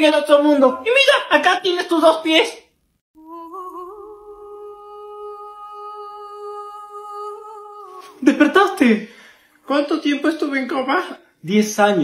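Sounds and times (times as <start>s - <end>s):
person humming: 3.2s - 8.5s.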